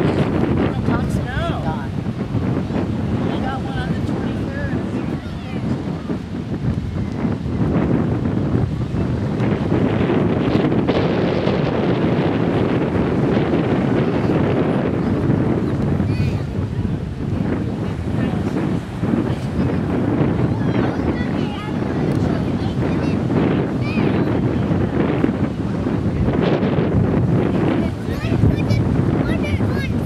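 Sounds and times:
small waves breaking on shore: 0.0 - 30.0
wind buffeting microphone: 0.0 - 30.0.

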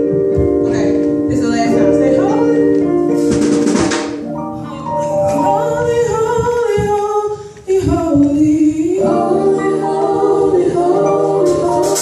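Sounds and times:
women singing in harmony: 5.3 - 12.0.

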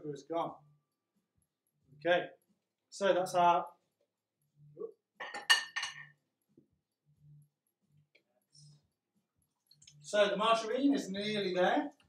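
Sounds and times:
crockery clinking: 5.2 - 6.2.

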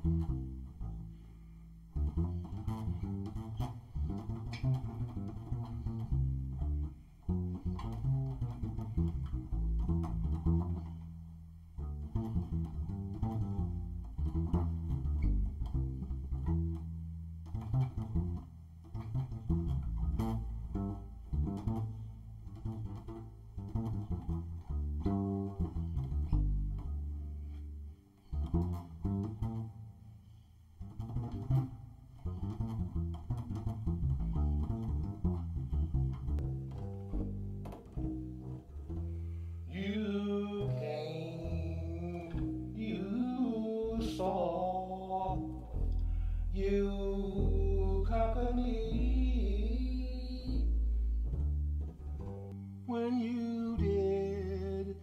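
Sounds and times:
plucked double bass: 0.0 - 55.0
man singing wordlessly: 39.7 - 45.9, 46.5 - 50.8, 52.9 - 55.0.

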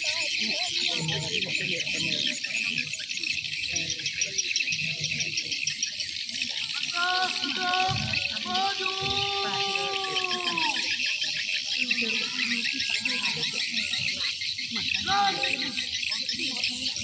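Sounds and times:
person shouting marching command: 7.0 - 10.8, 15.0 - 15.7.

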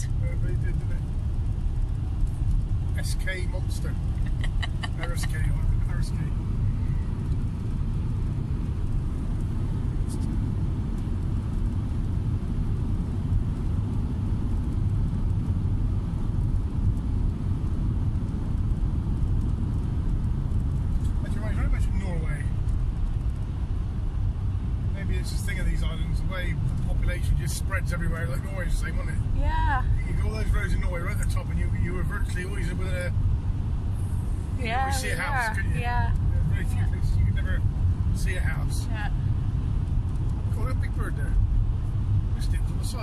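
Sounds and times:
vehicle road and engine rumble: 0.0 - 43.0.

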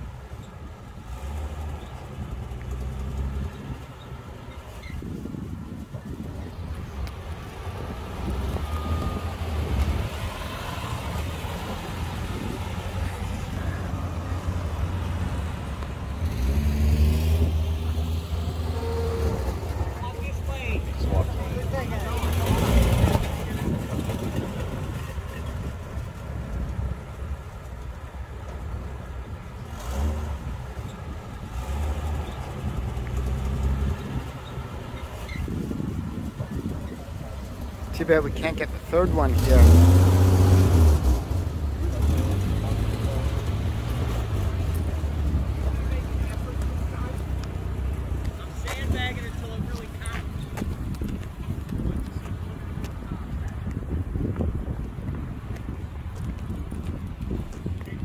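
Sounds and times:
car engines running at low speed: 0.0 - 58.0
background voices talking: 1.8 - 29.8, 30.4 - 58.0
car driving past: 7.0 - 26.0.

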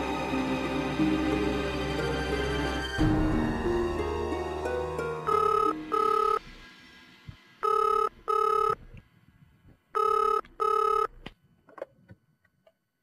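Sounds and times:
telephone ringing: 5.3 - 6.4, 7.6 - 8.8, 10.0 - 11.1.

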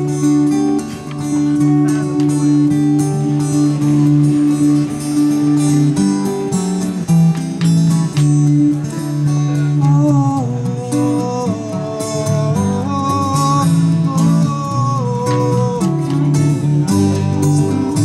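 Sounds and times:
guitar melody line: 0.0 - 18.0
strummed acoustic guitar chords: 0.0 - 18.0.

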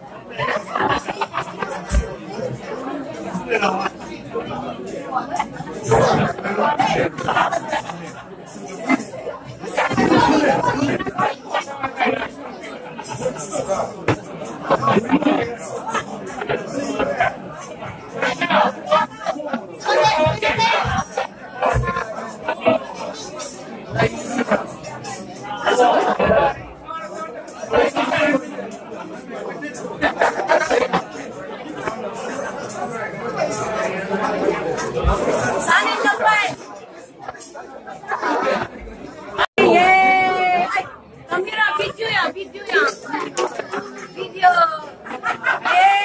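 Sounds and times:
people chattering in a large room: 0.0 - 46.0.

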